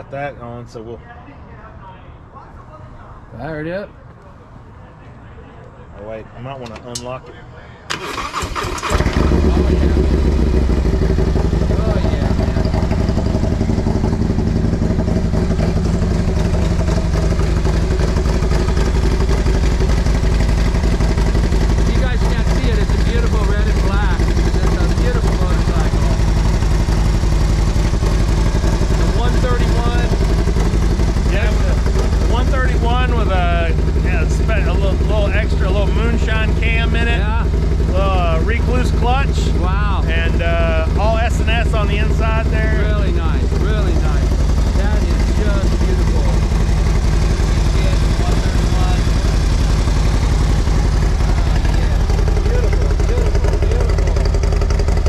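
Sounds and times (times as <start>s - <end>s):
people talking: 0.0s - 13.9s, 21.7s - 26.5s, 28.9s - 30.2s, 31.1s - 46.6s, 47.2s - 49.6s, 50.5s - 54.3s
motorcycle engine idling: 8.0s - 55.0s.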